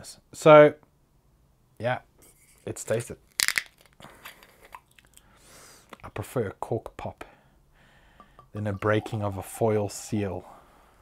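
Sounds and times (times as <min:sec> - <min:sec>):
bottle cap seal crackling open: 0:03.3 - 0:05.2.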